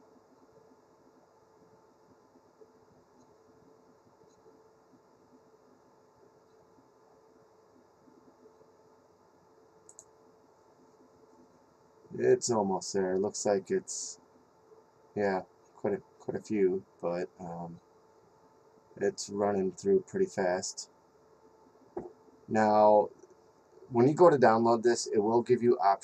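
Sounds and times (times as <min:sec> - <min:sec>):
low steady hum: 0:00.0 - 0:26.0
faint click: 0:09.8 - 0:10.2.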